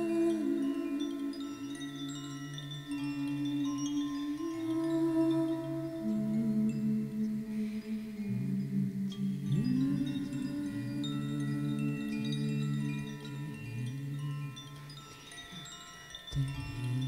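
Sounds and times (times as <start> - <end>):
high ringing chimes: 0.0 - 17.0.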